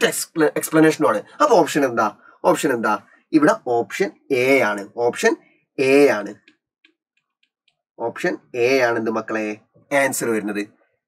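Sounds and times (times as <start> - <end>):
man speaking: 0.0 - 6.6, 8.0 - 10.8
stylus tapping on tablet: 6.2 - 7.9.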